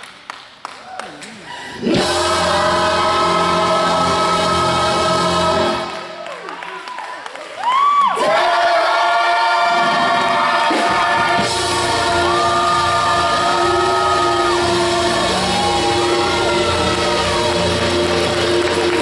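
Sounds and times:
gospel choir singing: 0:01.6 - 0:06.3, 0:08.2 - 0:19.0.

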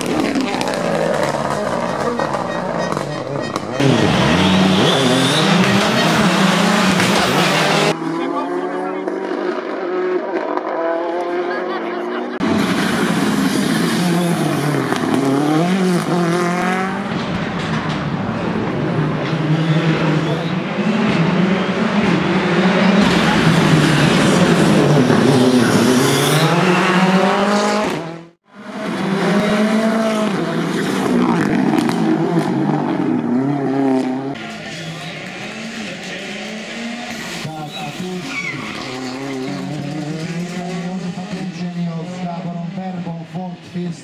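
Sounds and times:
rally car engine revving: 0:00.0 - 0:44.0.

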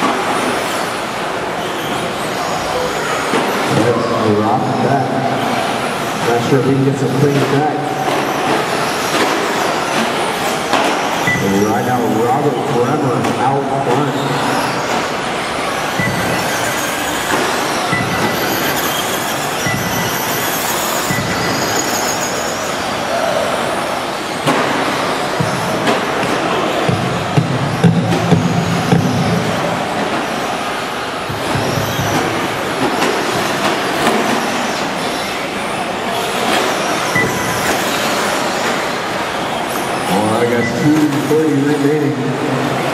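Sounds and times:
echoing hall din: 0:00.0 - 0:42.9.

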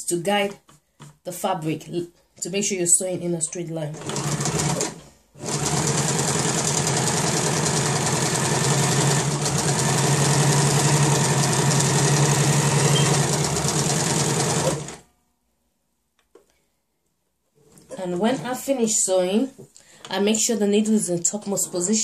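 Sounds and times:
sewing machine running: 0:03.9 - 0:15.0.

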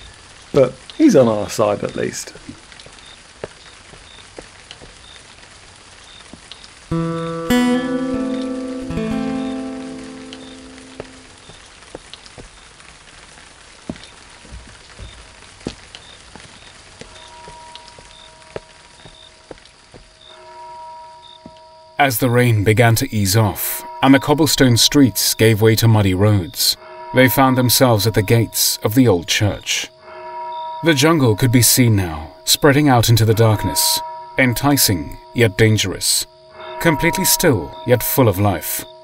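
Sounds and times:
water drips and patters: 0:00.0 - 0:20.4
steady rain falling: 0:00.0 - 0:39.0
plucked string chords: 0:06.9 - 0:11.4.

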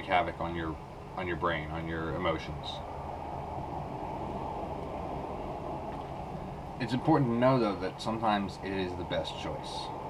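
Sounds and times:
low rushing machine hum: 0:00.0 - 0:10.0.

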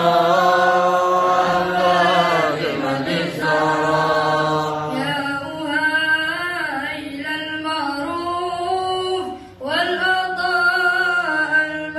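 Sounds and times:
men chanting long notes: 0:00.0 - 0:05.2.

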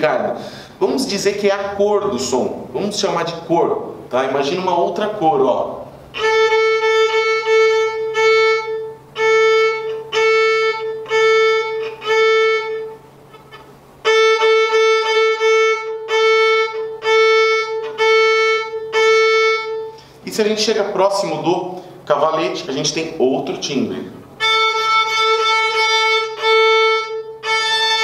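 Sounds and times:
violin short bow strokes: 0:06.1 - 0:20.2, 0:24.4 - 0:28.0.

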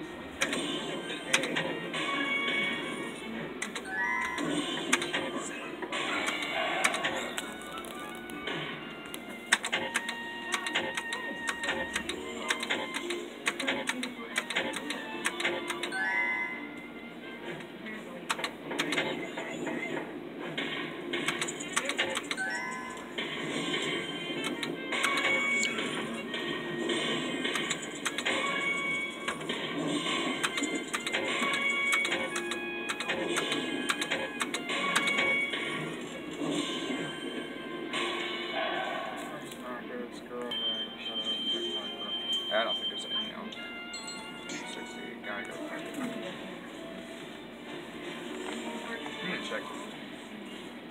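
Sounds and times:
noisy background: 0:00.0 - 0:50.9
electronic game tones: 0:00.4 - 0:13.8, 0:14.4 - 0:17.0, 0:21.2 - 0:38.4, 0:40.5 - 0:44.9
sharp clicks: 0:09.1 - 0:16.0, 0:18.3 - 0:19.0, 0:21.2 - 0:22.4, 0:30.4 - 0:35.2.

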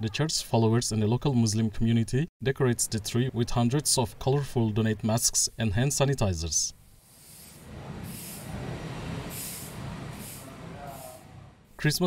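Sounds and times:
soft hissing swells: 0:06.8 - 0:11.8.

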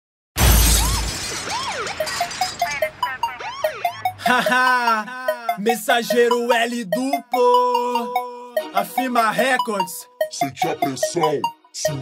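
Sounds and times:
crash with deep boom: 0:00.4 - 0:03.1.

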